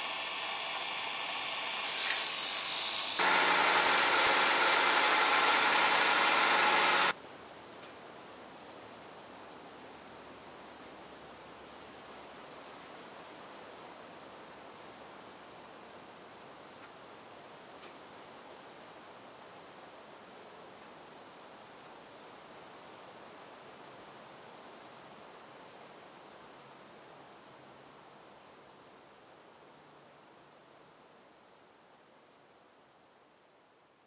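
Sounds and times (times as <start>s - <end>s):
faint steady hiss: 0.0s - 34.0s.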